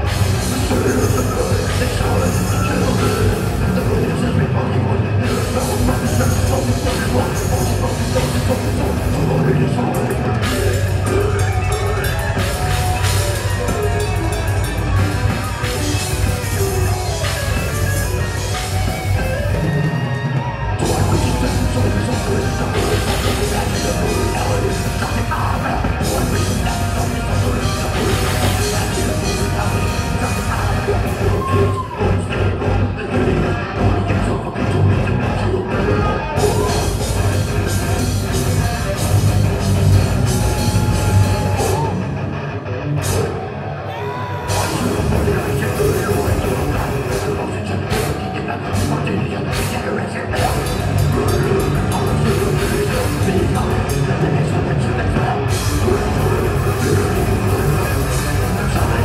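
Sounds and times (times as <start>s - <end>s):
fast drums: 0.0s - 42.1s, 43.0s - 59.0s
death metal band playing live: 0.0s - 59.0s
heavy distorted guitars and bass: 0.0s - 59.0s.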